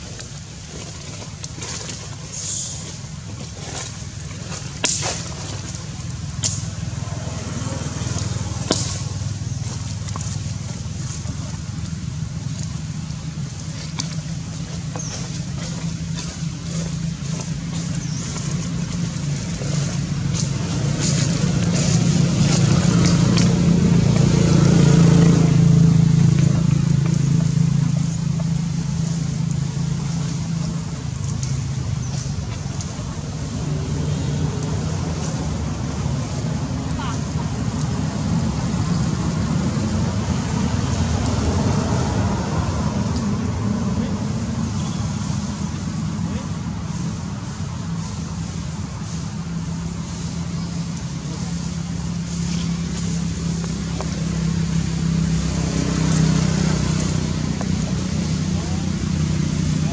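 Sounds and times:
vehicle engine passing by: 0:03.6 - 0:59.9.

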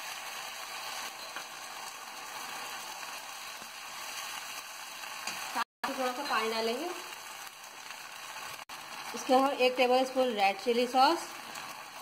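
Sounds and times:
vegetables sizzling in hot oil: 0:00.0 - 0:12.0.

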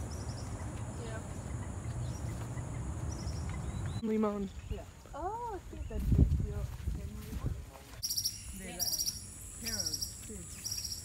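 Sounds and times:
wind rumbling on microphone: 0:00.0 - 0:08.0
faint bird chirps: 0:08.0 - 0:11.0.

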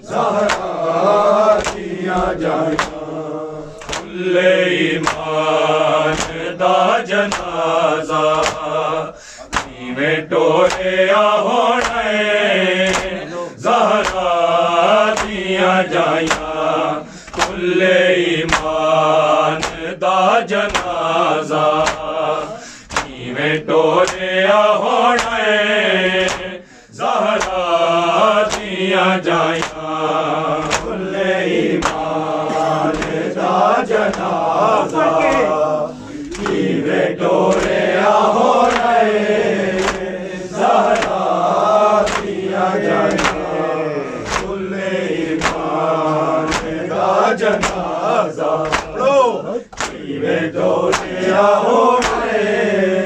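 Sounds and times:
men chanting in unison: 0:00.0 - 0:53.0
hands slapping chests: 0:00.1 - 0:52.5.

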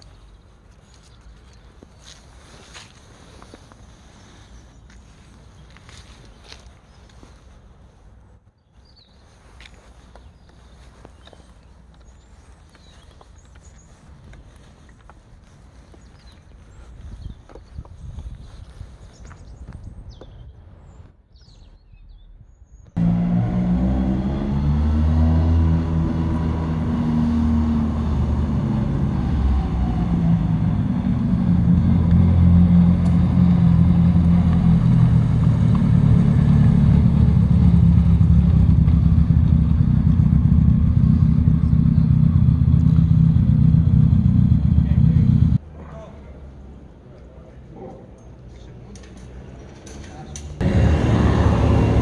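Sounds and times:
car engine revving: 0:23.0 - 0:45.6, 0:50.6 - 0:52.0.

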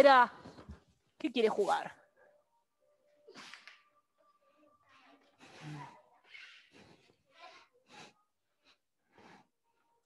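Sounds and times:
breathy exhalations: 0:05.4 - 0:09.6.

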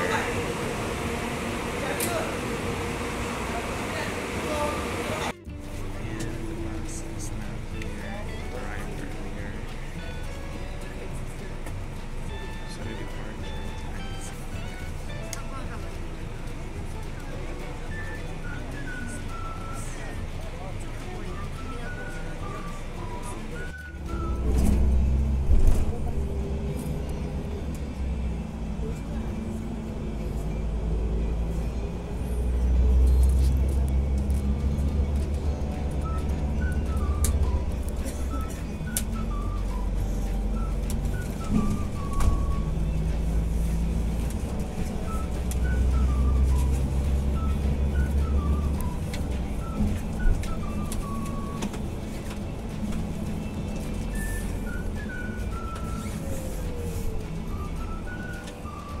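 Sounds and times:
bus engine and road rumble: 0:00.0 - 0:59.0.

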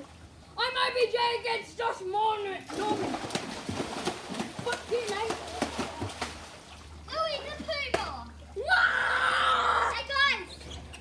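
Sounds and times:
water splashing in a pool: 0:02.6 - 0:10.3
children calling out and yelling: 0:07.1 - 0:10.6.

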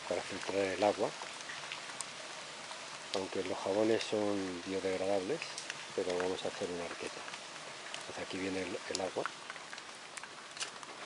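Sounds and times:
rain falling on vegetation: 0:00.0 - 0:11.0.

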